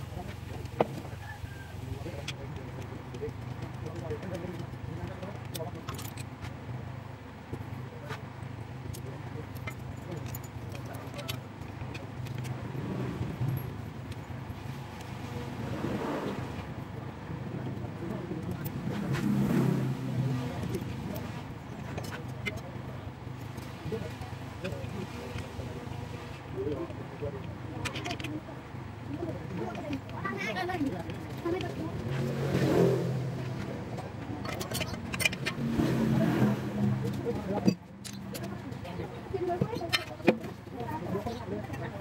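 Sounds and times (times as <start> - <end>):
low vehicle hum: 0.0 - 42.0
metallic clicks and clinks: 5.3 - 6.3, 8.8 - 12.6, 34.4 - 35.6, 37.0 - 38.7.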